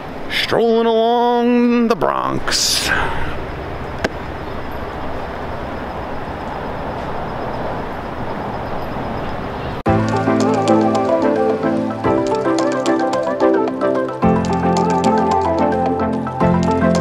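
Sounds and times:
outdoor background noise: 0:00.0 - 0:17.0
background music: 0:09.9 - 0:17.0.

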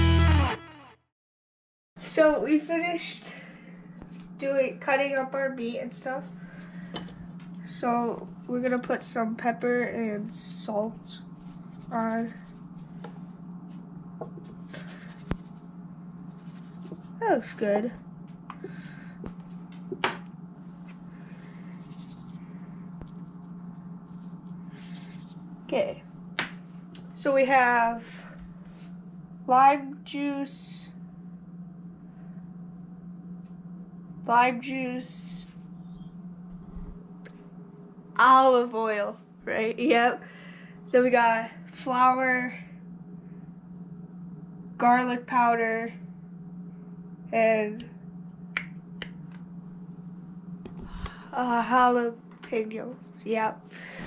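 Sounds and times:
steady low hum: 0:02.0 - 0:54.0
shaker grains pattering: 0:21.4 - 0:25.5.

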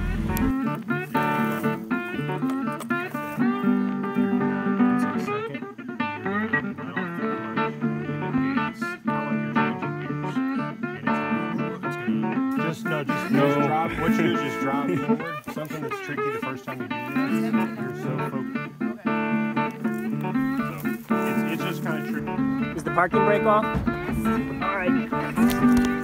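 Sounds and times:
plucked guitar music: 0:00.0 - 0:26.0.

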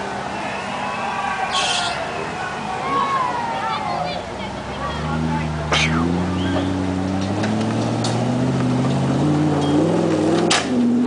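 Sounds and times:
off-road vehicle engine revving: 0:01.5 - 0:11.0.

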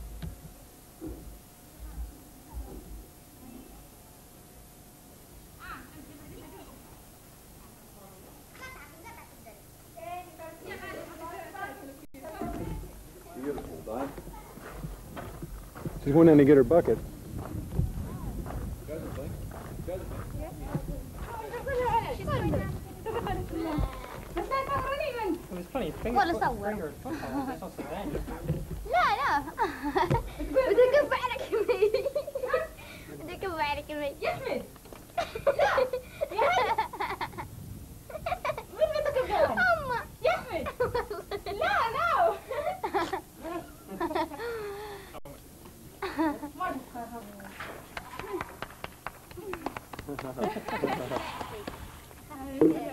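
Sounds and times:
distant indistinct voices: 0:05.4 - 0:29.8
girls chattering and giggling: 0:08.5 - 0:13.4, 0:20.3 - 0:33.4, 0:34.2 - 0:37.5, 0:38.1 - 0:45.2, 0:45.9 - 0:47.5, 0:50.4 - 0:52.9.

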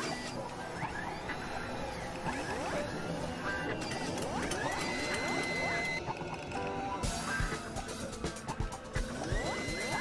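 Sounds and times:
electronic music backing: 0:04.3 - 0:10.0.

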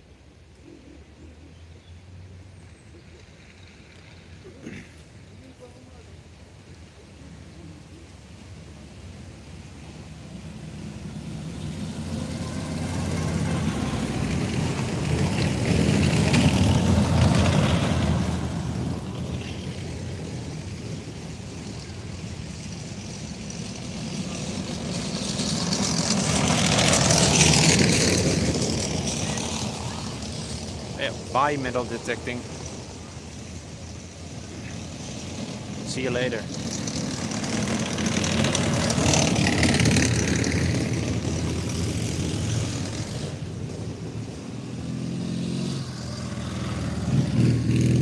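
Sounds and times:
vehicle engines passing: 0:00.0 - 0:48.0.

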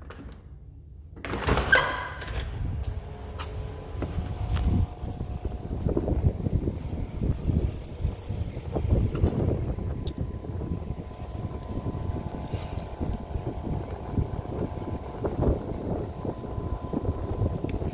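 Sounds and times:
wind buffeting microphone: 0:02.5 - 0:17.9.

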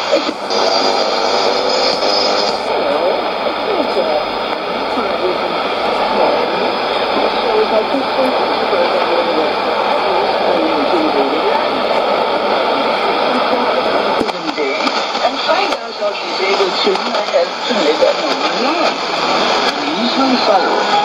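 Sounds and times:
radio broadcast speech: 0:00.0 - 0:21.0
radio hiss and noise: 0:00.0 - 0:21.0
radio retuning: 0:00.0 - 0:21.0.

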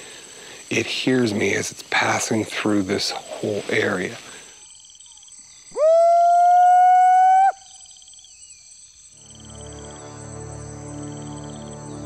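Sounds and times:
insects trilling: 0:00.0 - 0:12.0
man howling: 0:05.8 - 0:07.6
eerie droning music: 0:09.2 - 0:12.0.

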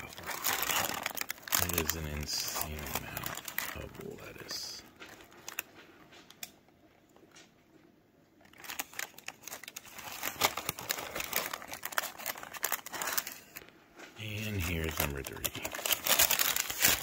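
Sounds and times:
paper wrappers crinkling: 0:00.0 - 0:07.5, 0:08.3 - 0:17.0.

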